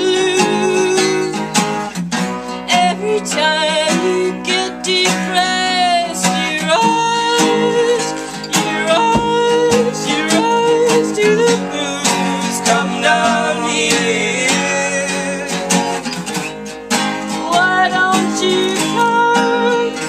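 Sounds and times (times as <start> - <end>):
people singing: 0.0 - 1.7, 2.7 - 16.3, 17.3 - 20.0
acoustic guitars strummed: 0.0 - 20.0.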